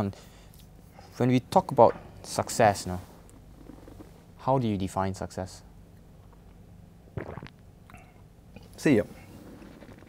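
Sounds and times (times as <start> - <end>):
low throat sound: 7.2 - 8.2.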